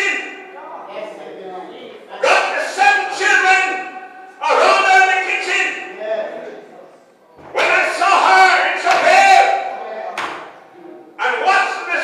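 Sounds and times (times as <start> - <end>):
man preaching through a microphone: 0.0 - 0.7, 2.2 - 6.4, 7.5 - 9.9, 11.2 - 12.0.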